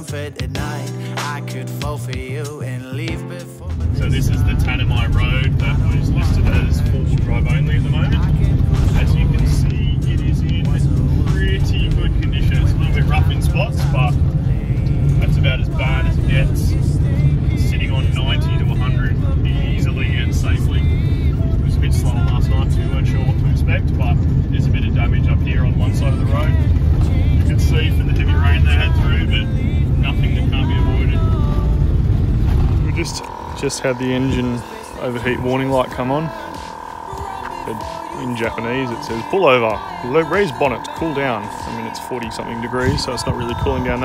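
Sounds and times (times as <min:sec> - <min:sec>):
van cabin low rumble: 0:03.8 - 0:44.0
tyre and road noise: 0:25.5 - 0:40.2.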